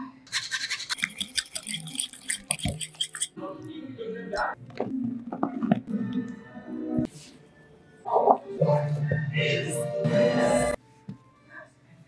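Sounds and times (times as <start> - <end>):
fork scraping glass bowl: 0.3 - 3.4.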